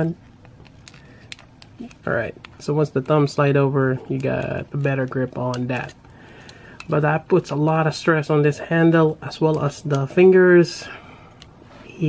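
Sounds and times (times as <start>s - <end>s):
plastic parts clicking: 0.5s - 2.6s.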